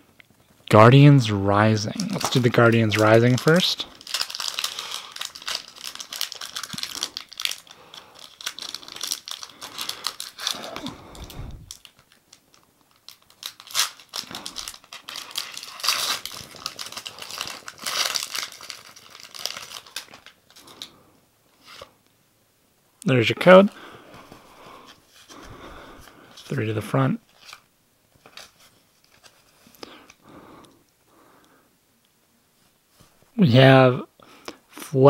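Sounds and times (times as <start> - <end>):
foil pack crinkling and tearing: 1.7 - 21.0, 27.3 - 30.2.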